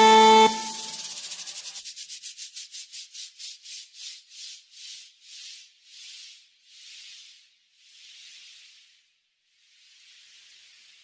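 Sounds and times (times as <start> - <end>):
pulses of high hiss: 0.0 - 1.6.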